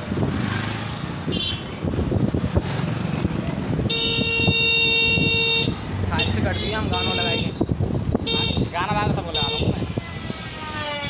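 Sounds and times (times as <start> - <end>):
motorbike engine and tyre noise: 0.0 - 8.8
vehicle horn: 1.3 - 1.7, 3.8 - 7.6, 8.2 - 8.7.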